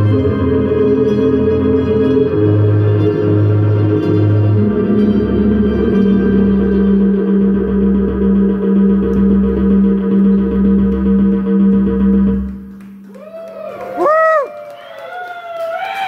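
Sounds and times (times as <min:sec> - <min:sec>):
pulsing bass note: 0:00.0 - 0:12.7
synthesizer drone: 0:00.0 - 0:13.1
crowd whoops: 0:13.1 - 0:16.0.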